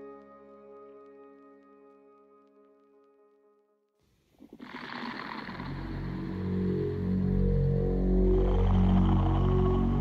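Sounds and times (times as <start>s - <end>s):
low sustained drone tones: 5.5s - 10.0s.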